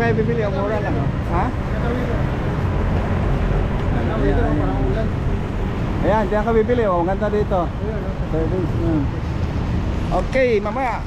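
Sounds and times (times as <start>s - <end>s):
people talking: 0.0s - 2.4s, 3.8s - 5.2s, 6.0s - 9.2s
traffic rumble: 0.0s - 11.0s.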